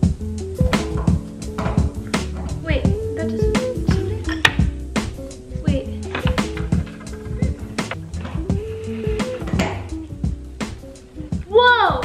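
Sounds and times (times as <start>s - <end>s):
background music with bass line: 0.0s - 12.0s
light wooden knocks and clacks: 6.0s - 8.4s.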